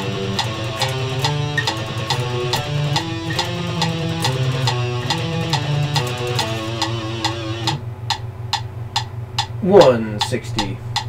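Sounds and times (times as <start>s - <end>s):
electric guitar picking fast notes: 0.0s - 7.8s
metronome click: 0.0s - 11.0s.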